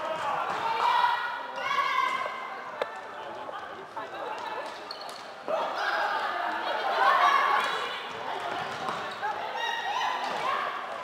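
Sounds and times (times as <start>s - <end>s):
people shouting in sports hall: 0.0s - 2.7s, 5.4s - 11.0s.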